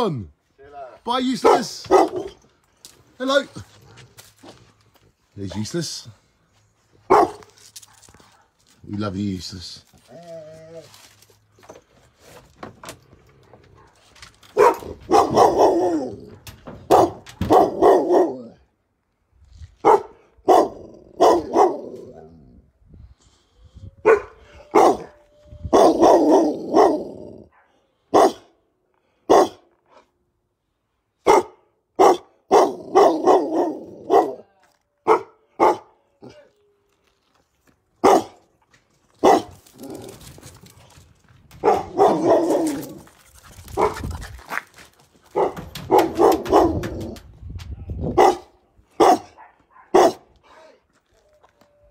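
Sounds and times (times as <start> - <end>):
dog barking: 1.4 - 2.4, 7.1 - 8.6, 13.5 - 18.6, 19.8 - 22.0, 24.0 - 28.5, 29.3 - 29.6, 31.2 - 36.4, 38.0 - 38.4, 39.2 - 39.6, 41.6 - 42.9, 43.8 - 44.0, 45.3 - 47.0, 48.2 - 50.3.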